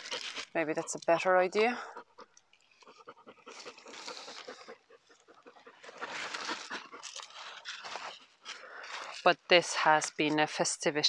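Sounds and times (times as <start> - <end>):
dog panting: 0.0 - 8.2.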